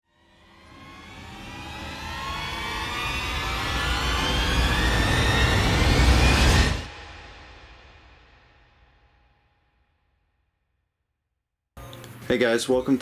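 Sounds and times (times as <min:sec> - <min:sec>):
rising whoosh sound effect: 0:00.6 - 0:07.6.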